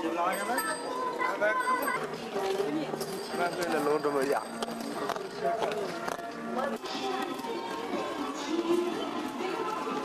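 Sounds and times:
street crowd voices: 0.0s - 10.0s.

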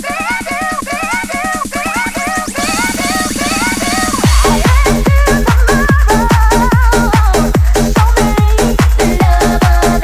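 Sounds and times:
bending synth lead: 0.0s - 10.0s
buzzing synth riff: 0.0s - 10.0s
steady kick drum: 0.0s - 10.0s
short bass stabs: 2.5s - 9.2s.

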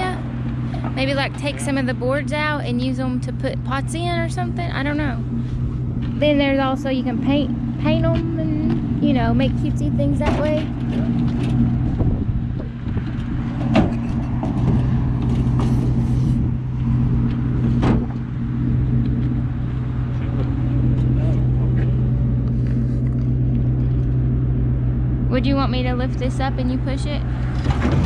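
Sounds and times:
pickup truck engine idling: 0.0s - 28.0s.

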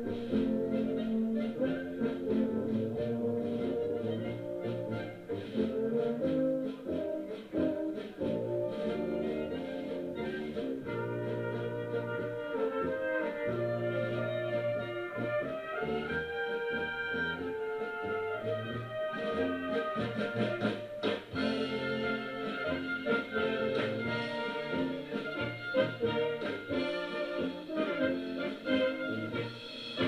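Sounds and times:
brass band playing: 0.0s - 30.0s.

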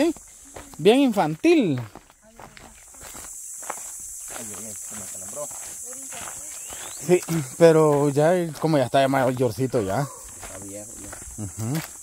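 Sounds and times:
footsteps crunching on leaves: 0.0s - 12.0s
high-pitched insect drone: 0.0s - 12.0s.

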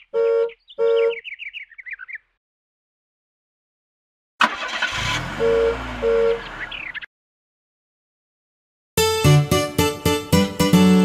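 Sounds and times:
tweeting chirps stepping down: 0.0s - 2.2s
horn-like honks: 5.0s - 6.5s.

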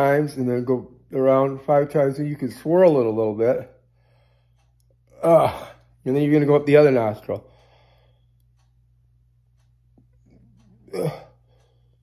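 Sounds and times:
man grunting: 5.2s - 5.8s, 10.9s - 11.4s.

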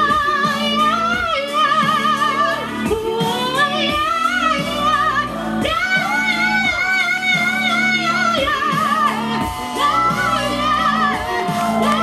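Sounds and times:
high voice singing with vibrato: 0.0s - 12.0s
pop backing music: 0.0s - 12.0s.

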